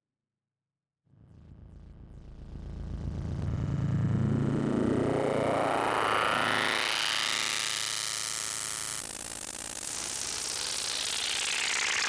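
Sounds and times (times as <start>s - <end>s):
noisy synthesizer drone rising: 1.3s - 12.0s.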